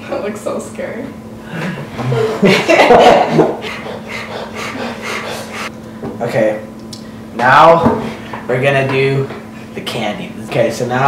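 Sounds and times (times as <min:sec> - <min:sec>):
person panting: 0:03.4 - 0:05.7.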